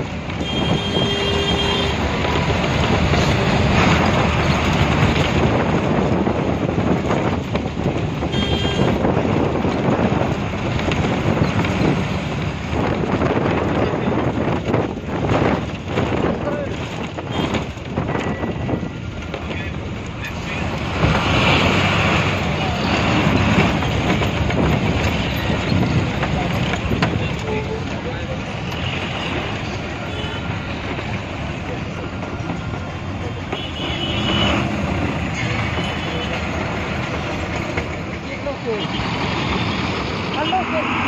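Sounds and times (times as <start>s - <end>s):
bus engine and road noise: 0.0s - 41.0s.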